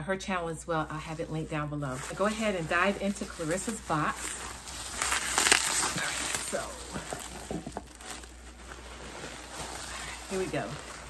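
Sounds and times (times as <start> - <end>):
bubble wrap rustling: 0.8 - 11.0.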